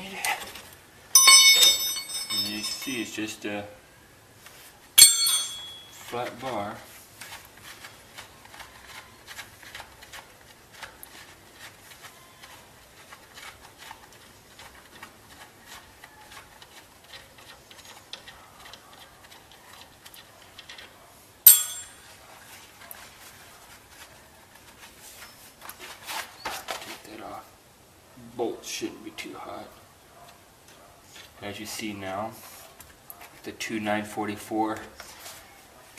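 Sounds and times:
ticking and scratching on metal: 0.2s - 3.2s, 5.0s - 22.2s.

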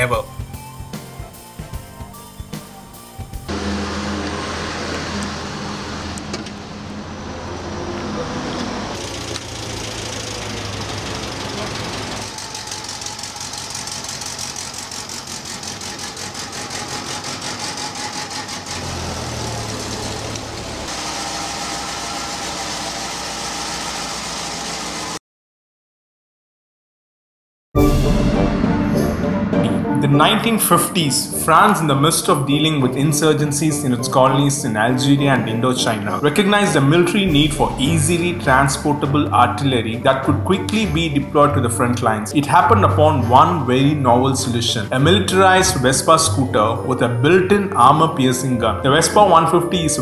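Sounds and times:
tracked motorcycle engine drone: 3.5s - 16.6s, 17.8s - 23.9s.

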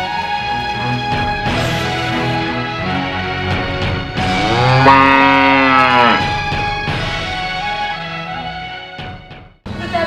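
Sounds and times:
background music: 0.0s - 10.0s
cow mooing: 4.3s - 6.4s.

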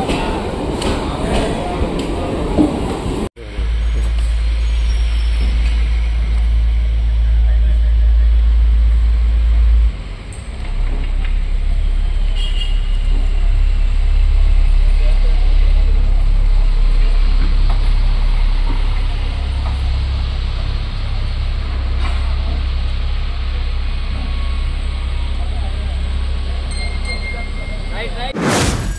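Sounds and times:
train rumbling into station: 0.0s - 28.9s.

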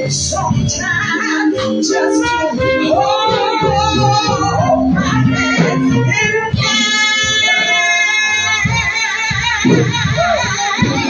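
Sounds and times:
high lead melody: 0.0s - 11.0s
live jazz band playing: 0.0s - 11.0s.

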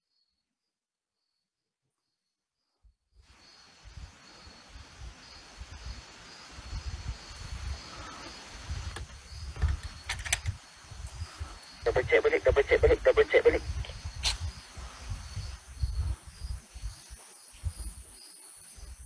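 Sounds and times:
insects chirring: 3.3s - 19.0s
footsteps on paved path: 16.2s - 19.0s.

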